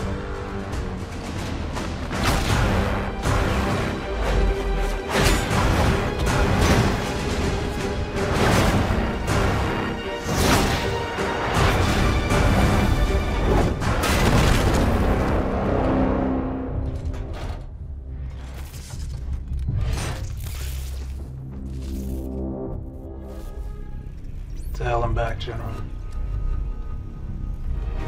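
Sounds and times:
dramatic orchestral music: 0.0s - 28.0s.

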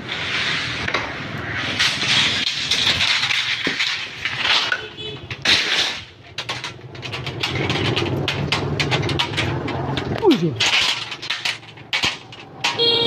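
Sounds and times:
metal roofing sheets clattering: 0.0s - 13.0s.

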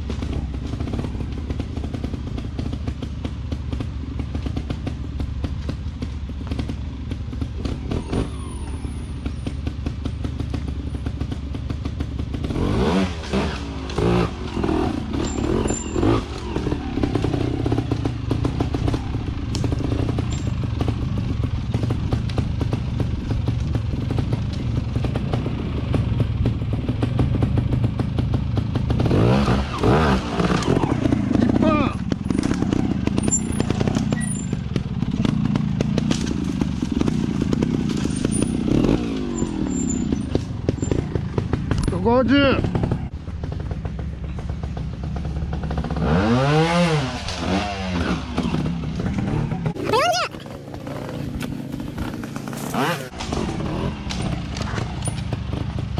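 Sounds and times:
motorcycle engine revving: 0.0s - 55.9s.

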